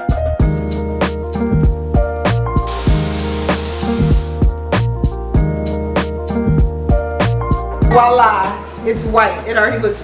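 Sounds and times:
background music with steady beat: 0.0s - 10.0s
paint sprayer hissing: 2.7s - 4.5s.

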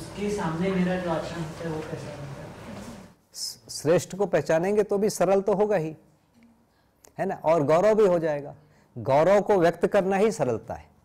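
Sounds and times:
man speaking: 3.3s - 6.1s, 7.2s - 10.9s.

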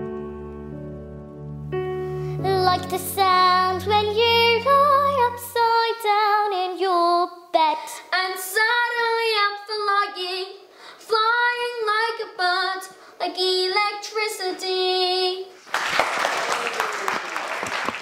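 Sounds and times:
young voice singing unaccompanied: 2.4s - 15.6s.

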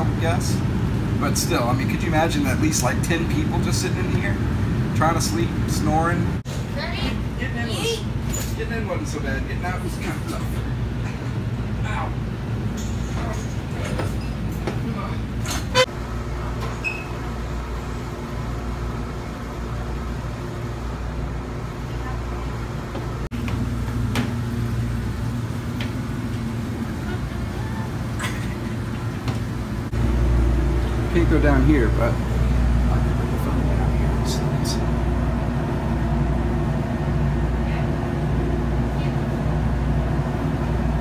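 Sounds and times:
low mechanical hum: 0.0s - 41.0s
knocks and bumps of people moving: 13.1s - 15.8s.

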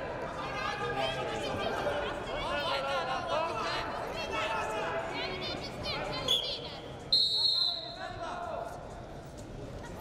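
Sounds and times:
voices in a hall: 0.0s - 10.0s
referee's whistle blast: 7.1s - 8.0s.

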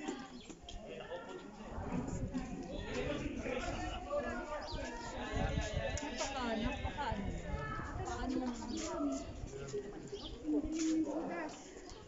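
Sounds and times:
faint voices of people: 0.0s - 12.0s.

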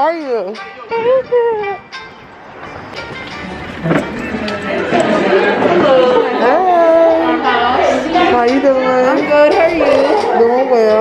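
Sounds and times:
people talking: 4.3s - 11.0s.

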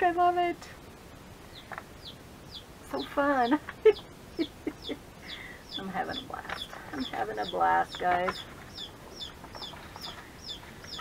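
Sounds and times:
bird chirping: 1.4s - 11.0s.

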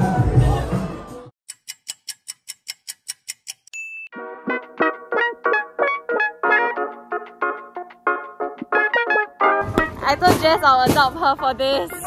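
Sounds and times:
light ticking sound effect: 1.5s - 4.0s
light keyboard background music: 4.2s - 12.0s.

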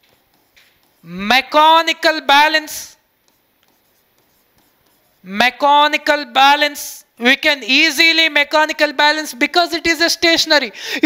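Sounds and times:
chalk writing on chalkboard: 0.0s - 6.2s.

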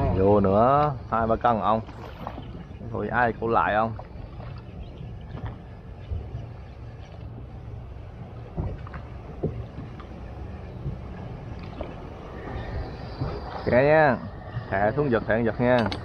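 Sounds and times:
steady low rumble: 0.0s - 16.0s
water slapping against hull: 0.0s - 16.0s
light knocks on boat: 8.4s - 10.2s.

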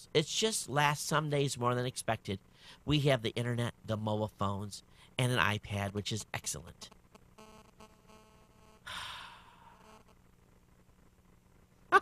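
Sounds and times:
faint electrical buzz: 0.0s - 12.0s
man sighing into microphone: 8.9s - 9.8s.

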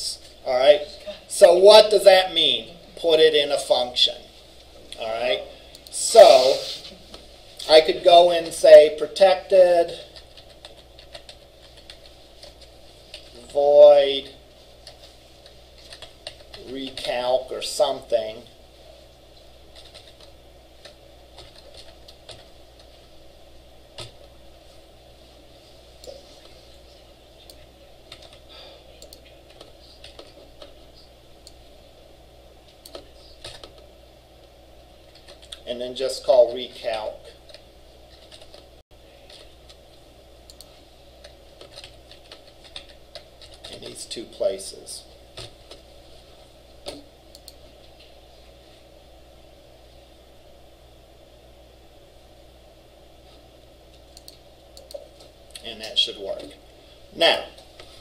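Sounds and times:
low room hum: 0.0s - 58.0s
computer keyboard clicking: 10.1s - 13.3s, 15.8s - 17.1s, 19.7s - 22.9s, 28.1s - 28.4s, 32.8s - 33.8s, 37.5s - 38.6s, 40.5s - 43.9s
computer mouse clicking: 10.1s - 13.3s, 14.8s - 17.1s, 27.5s - 28.4s, 32.8s - 33.8s, 40.5s - 43.8s, 46.8s - 48.1s, 54.0s - 55.6s
keyboard clicks: 10.1s - 13.3s.

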